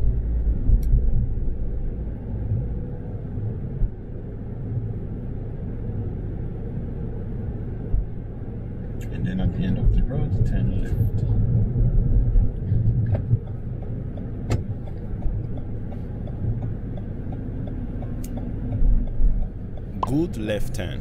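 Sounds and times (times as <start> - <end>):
car interior road rumble: 0.0 - 21.0
turn signal ticking: 12.4 - 21.0.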